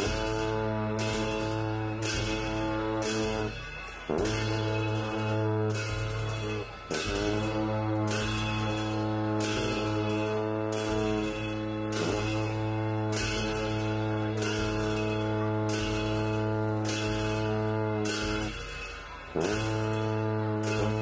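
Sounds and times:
low horn drone: 0:00.0 - 0:03.5, 0:04.1 - 0:18.6, 0:19.3 - 0:21.0
cymbal crashes: 0:00.0 - 0:21.0.

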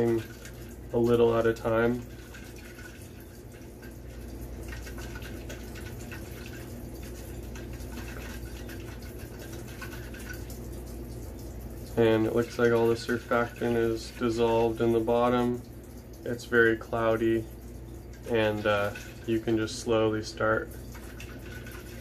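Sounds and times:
liquid pattering and sloshing in cup: 0:00.0 - 0:22.0.

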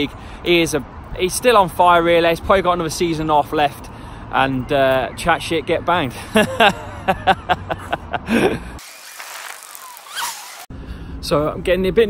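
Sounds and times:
faint street ambience hiss: 0:00.0 - 0:12.0
man laughing: 0:06.1 - 0:08.8.

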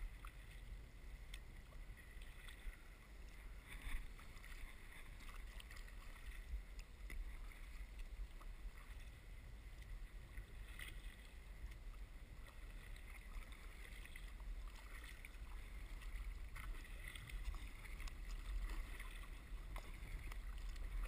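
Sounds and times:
paddle splashes: 0:00.0 - 0:21.0
water against kayak hull: 0:00.0 - 0:21.0.

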